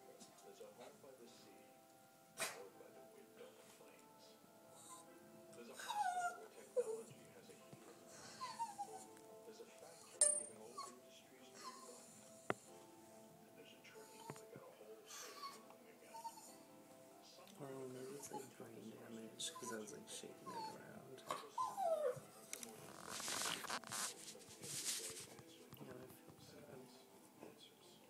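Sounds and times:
dog whining: 5.8 - 7.1, 8.1 - 9.2, 11.6 - 12.2, 15.2 - 16.6, 18.1 - 18.5, 19.5 - 23.9
sharp ringing clink: 10.2 - 10.6.

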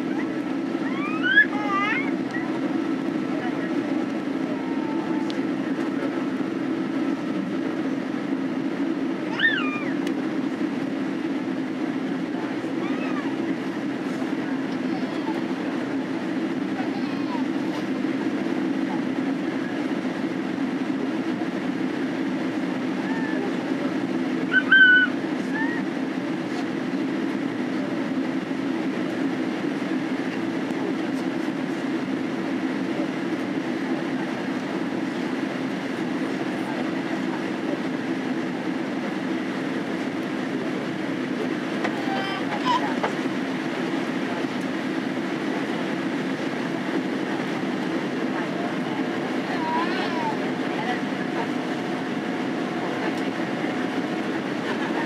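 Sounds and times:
low airplane cabin drone: 0.0 - 55.0.

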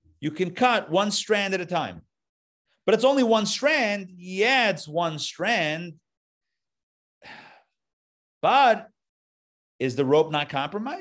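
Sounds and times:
man's short breath: 7.2 - 7.8.

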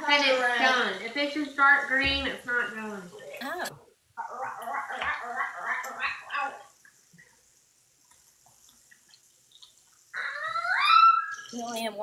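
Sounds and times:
person speaking: 3.4 - 3.8, 11.6 - 12.0.

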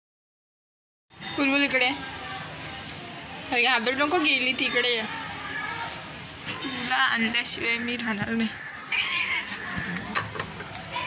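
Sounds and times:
cat meowing: 8.6 - 10.1.

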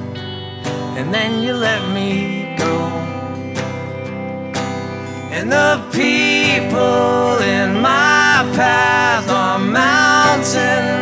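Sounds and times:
acoustic guitar strumming: 0.0 - 11.0
person singing: 0.8 - 3.8, 5.1 - 11.0.

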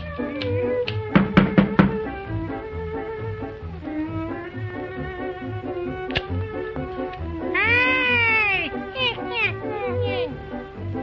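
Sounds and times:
jaunty background music: 0.0 - 11.0
sharp snip: 6.1 - 6.3
cartoon cat meowing: 7.5 - 10.3.

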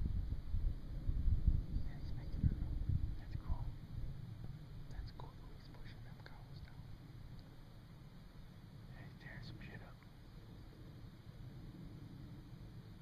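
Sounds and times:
low steady rumble: 0.0 - 13.0
faint whispering: 1.8 - 3.8, 4.9 - 7.0, 8.9 - 10.0.

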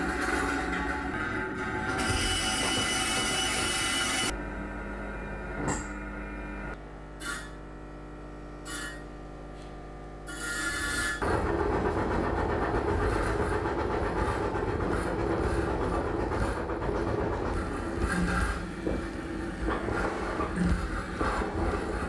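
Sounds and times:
electrical hum: 0.0 - 22.0.

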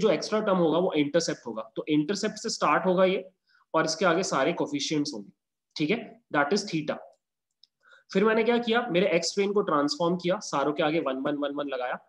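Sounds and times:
man speaking: 0.0 - 7.2, 8.1 - 12.0.

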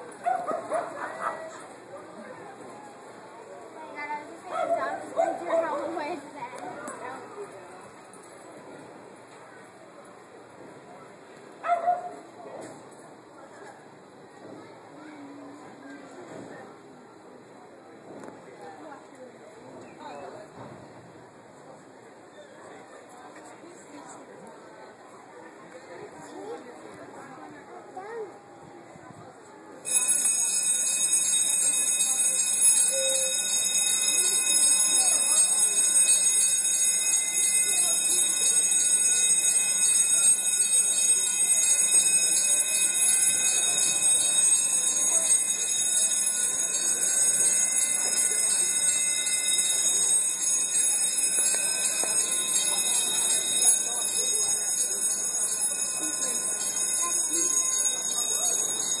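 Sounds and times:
electric warning bell ringing: 29.9 - 59.0.

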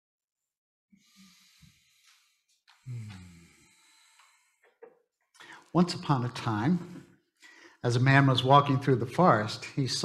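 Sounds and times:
breath intake: 1.0 - 4.6
man's low hum: 2.8 - 3.7.

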